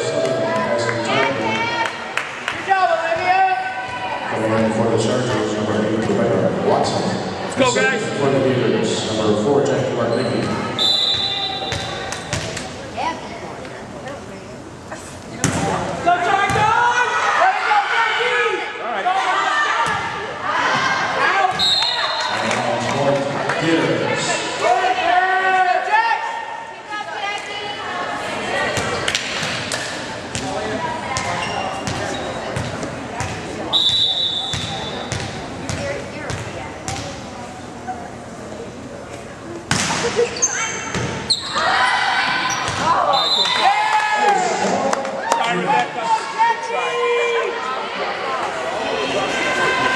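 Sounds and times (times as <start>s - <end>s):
crowd chatter: 0.0s - 49.9s
referee's whistle: 10.3s - 11.9s, 21.6s - 22.4s, 33.7s - 35.0s, 43.1s - 43.7s
volleyball being hit: 15.4s - 15.8s, 39.7s - 40.2s
volleyball thuds: 15.4s - 15.8s.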